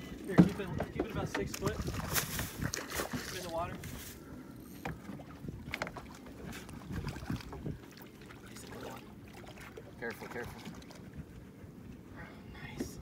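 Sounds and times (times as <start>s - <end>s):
wind rumble on microphone: 0.0s - 4.3s, 4.9s - 7.8s
water lapping: 0.0s - 13.0s.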